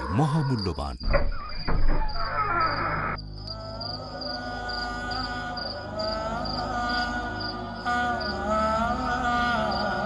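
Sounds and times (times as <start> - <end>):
cricket chirps: 0.0 - 10.0.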